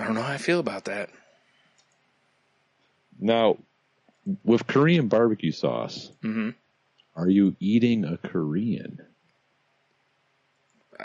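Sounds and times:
man's voice trailing off: 0:00.0 - 0:01.0, 0:03.2 - 0:03.6, 0:04.3 - 0:06.5, 0:07.2 - 0:09.0
faint clicks: 0:01.7 - 0:02.0.

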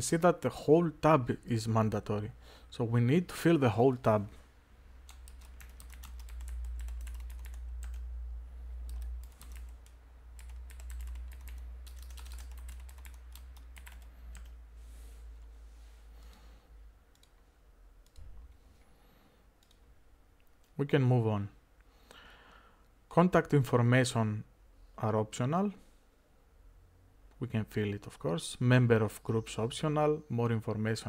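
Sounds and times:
computer keyboard typing: 0:05.0 - 0:08.1, 0:08.8 - 0:14.6, 0:17.1 - 0:17.4, 0:18.0 - 0:18.3.

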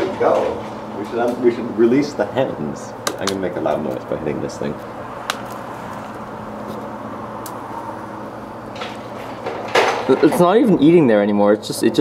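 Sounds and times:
low indoor hum: 0:00.0 - 0:12.0.

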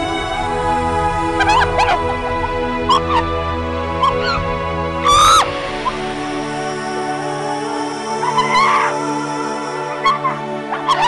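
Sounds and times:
sad background music: 0:00.0 - 0:11.0.

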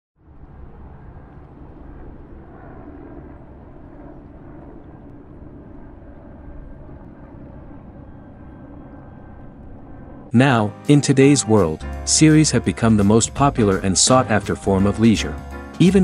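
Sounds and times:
low outdoor rumble: 0:00.2 - 0:10.4.

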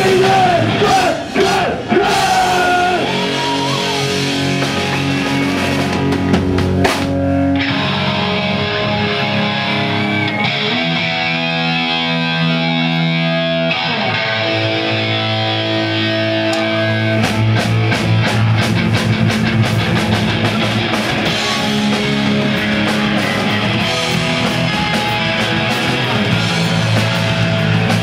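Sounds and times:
drums: 0:00.0 - 0:28.0
loud electric guitar chords: 0:00.0 - 0:28.0.

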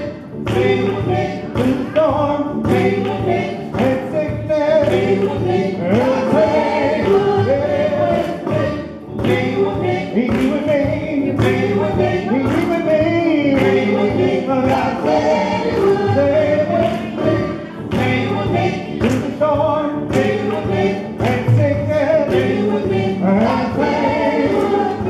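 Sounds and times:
vocal group singing in harmony: 0:00.0 - 0:25.0.

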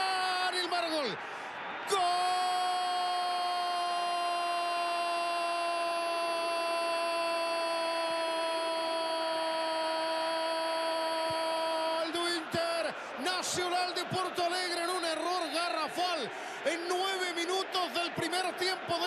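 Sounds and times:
man shouting long held cry: 0:00.0 - 0:01.2, 0:01.8 - 0:19.0.

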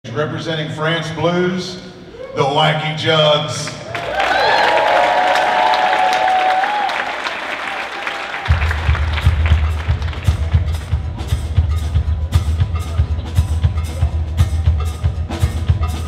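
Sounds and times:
audience applause: 0:03.8 - 0:11.0
blues band playing: 0:08.3 - 0:16.0.

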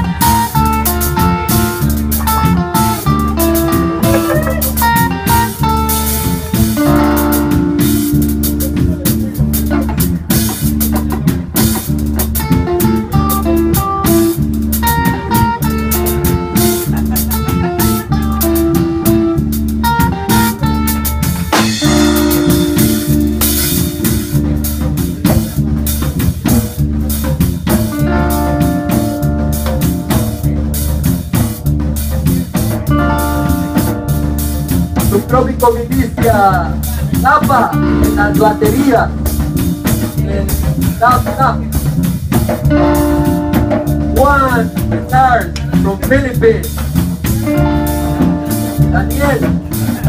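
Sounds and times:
drum kit: 0:00.0 - 0:50.0
electric bass: 0:00.0 - 0:50.0
electric guitar: 0:00.0 - 0:50.0
held chords: 0:00.0 - 0:50.0
keyboard: 0:00.0 - 0:50.0
reggae dub band playing: 0:00.0 - 0:50.0.

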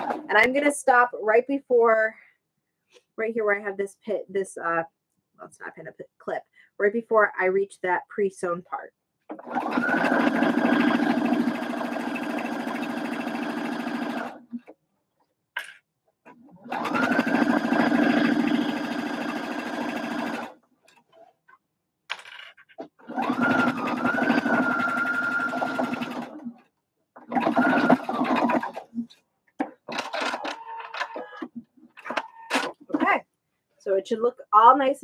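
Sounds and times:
sewing machine stitching: 0:09.4 - 0:14.7, 0:16.4 - 0:20.6, 0:23.0 - 0:26.6, 0:27.2 - 0:29.0.

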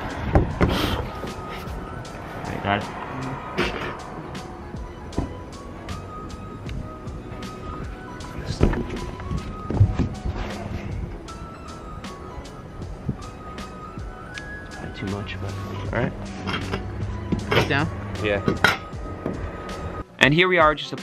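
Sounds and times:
background music melody: 0:00.0 - 0:21.0.

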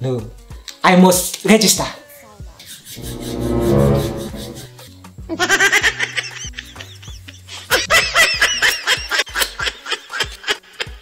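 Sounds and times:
background music: 0:03.0 - 0:04.8.

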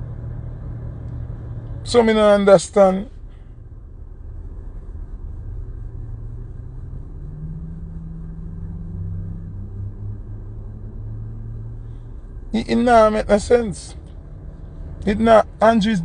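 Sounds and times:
car engine rumble: 0:00.0 - 0:16.0.

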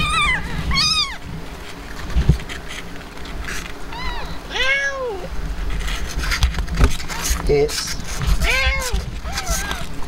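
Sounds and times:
cat meowing: 0:00.0 - 0:01.2, 0:03.9 - 0:05.3, 0:08.4 - 0:09.9.

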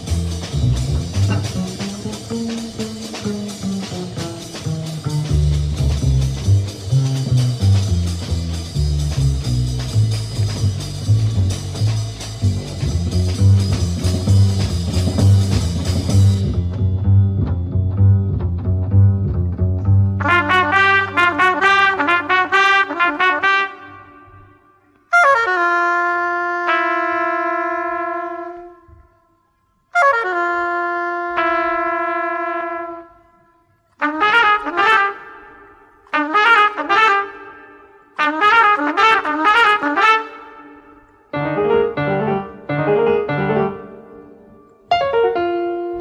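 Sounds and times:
trumpet-led film music: 0:20.2 - 0:29.0, 0:29.9 - 0:44.3.

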